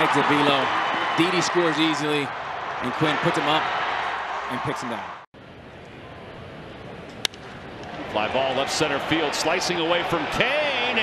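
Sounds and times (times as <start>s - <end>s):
ballpark crowd ambience: 5.4s - 11.0s.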